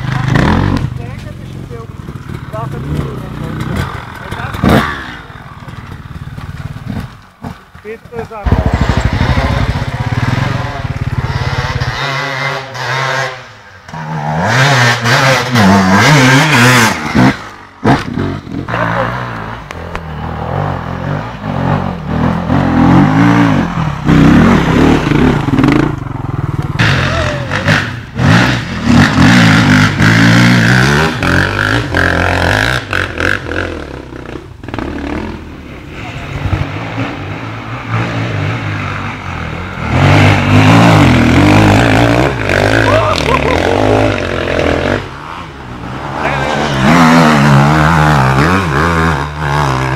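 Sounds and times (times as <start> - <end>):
dirt bike engines revving: 0.0 - 49.9.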